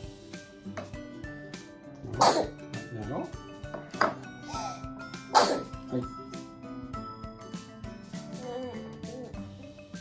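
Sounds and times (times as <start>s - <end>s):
light background music: 0.0s - 10.0s
toddler cough-like vocal burst: 2.1s - 2.6s, 5.3s - 5.8s.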